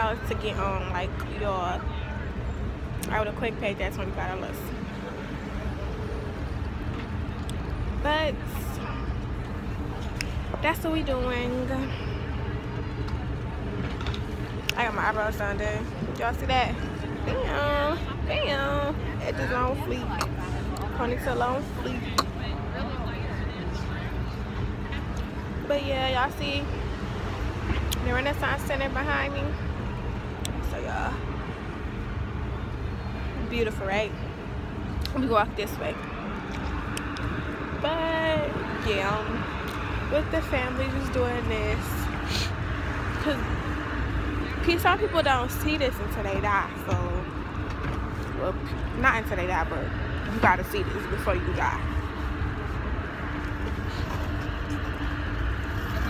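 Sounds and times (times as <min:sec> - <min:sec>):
low outdoor rumble: 0:00.0 - 0:56.0.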